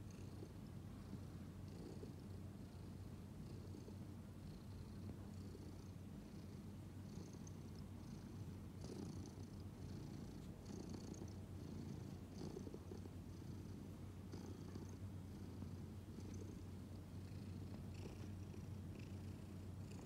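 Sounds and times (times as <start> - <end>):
cat purring: 0.0 - 20.0.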